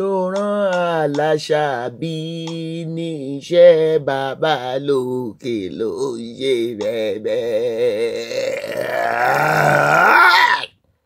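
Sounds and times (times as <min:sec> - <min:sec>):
person singing with vibrato: 0:00.0 - 0:10.7.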